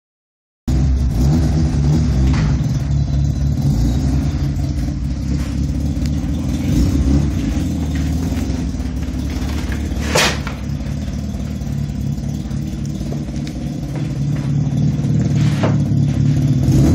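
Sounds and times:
rotary engine running at low revs: 0.7 - 16.9.

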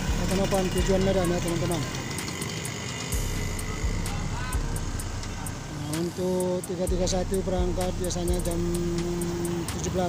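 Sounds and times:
bus engines idling: 0.0 - 10.0
faint regular ticking: 0.0 - 10.0
faint voices: 0.0 - 10.0.

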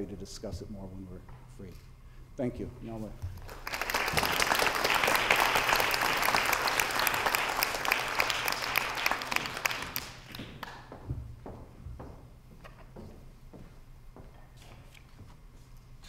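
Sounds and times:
crowd clapping: 3.4 - 10.9.

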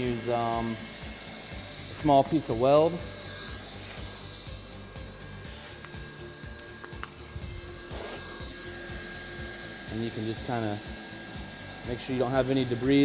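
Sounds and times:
blower hissing: 0.0 - 13.0.

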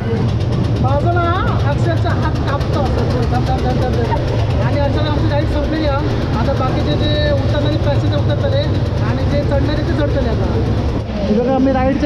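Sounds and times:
loud low mechanical drone: 0.0 - 12.0
voices talking: 0.0 - 12.0.

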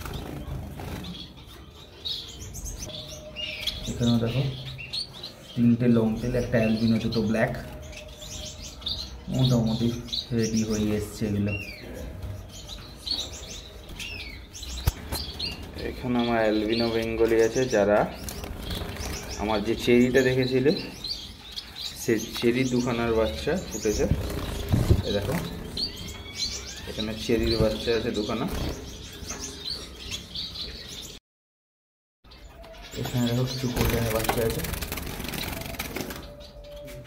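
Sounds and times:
finches chirping: 0.0 - 31.2.

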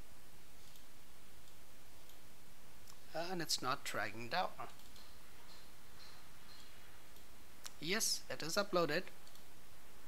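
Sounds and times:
low microphone hiss: 0.0 - 10.0
computer mouse click: 0.6 - 2.2, 4.8 - 7.8, 9.2 - 9.5.

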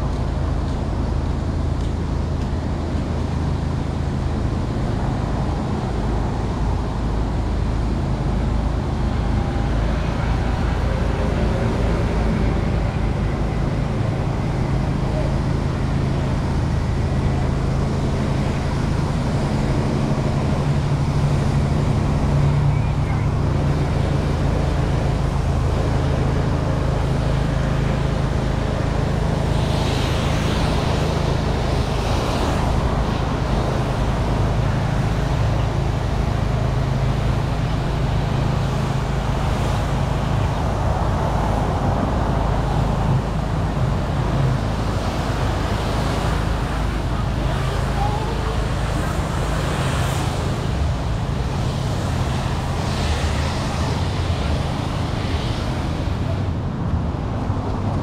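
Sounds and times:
cars passing on street: 0.0 - 58.0.

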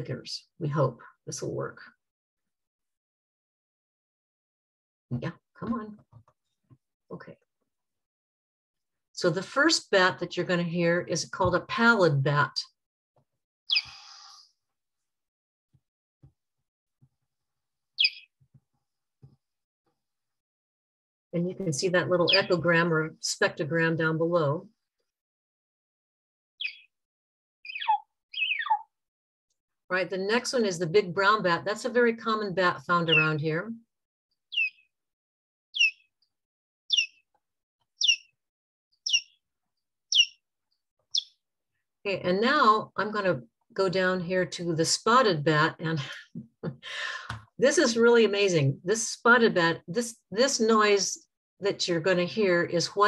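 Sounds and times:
bat echolocation chirps: 18.0 - 18.3, 22.2 - 22.6, 27.6 - 28.8, 34.5 - 34.8, 35.8 - 36.1, 36.9 - 37.2, 38.0 - 38.3, 39.0 - 39.4, 40.1 - 40.4, 41.1 - 41.3.

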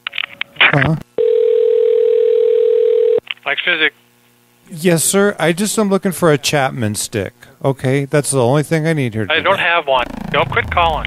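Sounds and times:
telephone ringback tone: 1.2 - 3.2.

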